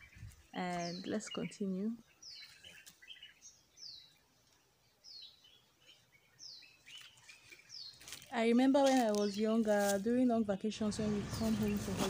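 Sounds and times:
soft bird chirps: 0.0s - 12.0s.

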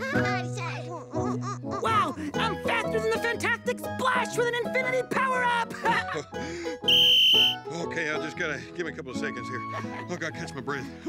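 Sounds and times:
music: 0.0s - 11.0s
whistle blast: 6.8s - 7.6s.

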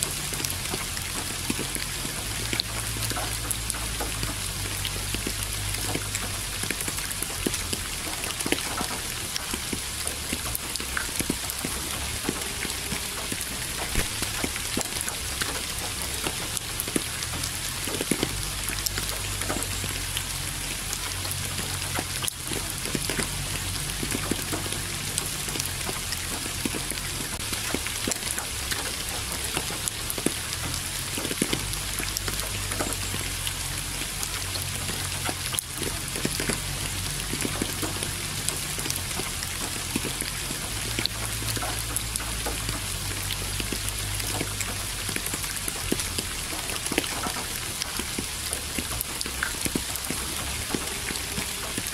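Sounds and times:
raindrop hits: 0.0s - 51.9s
steady rain falling: 0.0s - 51.9s.

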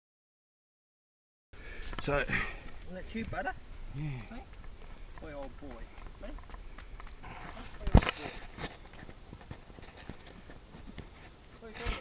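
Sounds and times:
horse hooves scuffing on dirt: 1.8s - 12.0s.

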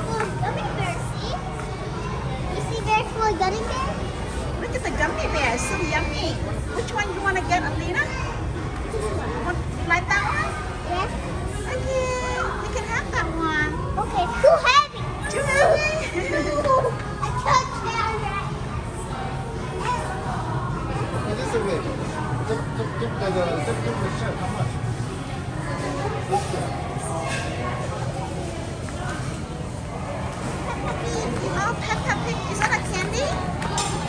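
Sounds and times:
young children chattering: 0.0s - 24.2s, 24.8s - 34.0s.

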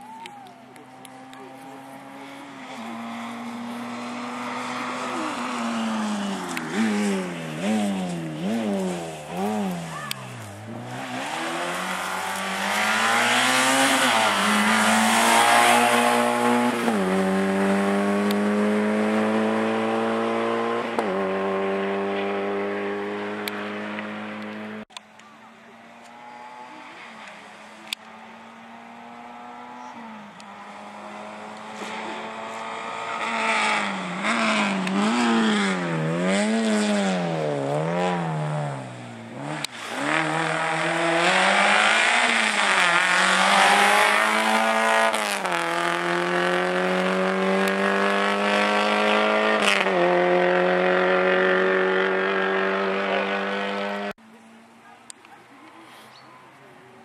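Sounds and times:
distant rally car engine approaching: 0.0s - 54.2s
rally car engine revving: 0.8s - 24.9s, 25.8s - 54.2s.

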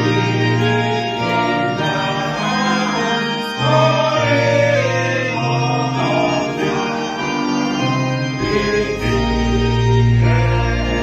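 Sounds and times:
congregation singing a hymn: 0.0s - 11.0s
organ accompaniment: 0.0s - 11.0s.

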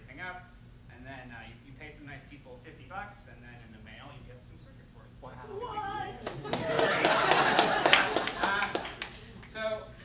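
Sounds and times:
audience reaction: 5.5s - 9.4s.

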